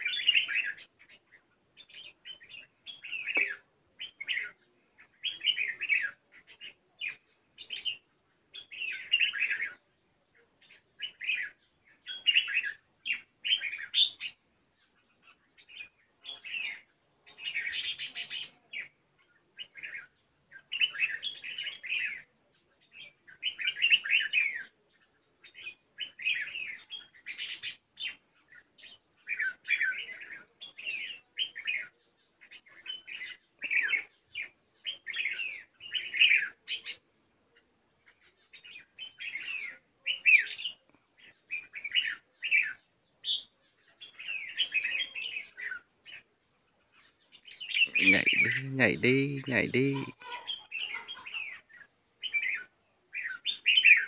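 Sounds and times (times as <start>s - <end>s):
bird chirping phrases: 0.0s - 54.0s.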